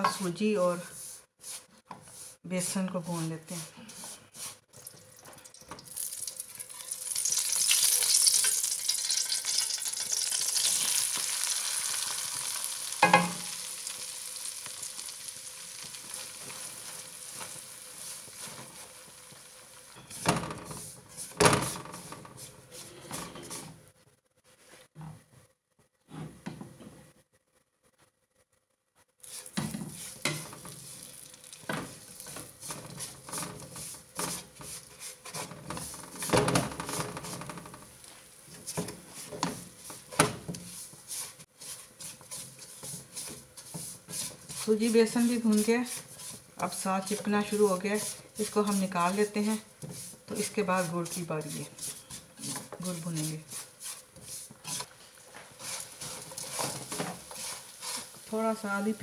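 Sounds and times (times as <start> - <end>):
spatula scraping and stirring: 0.0 - 5.1, 5.9 - 23.9, 29.2 - 59.0
ghee sizzling in a pan: 3.0 - 23.7, 29.2 - 59.0.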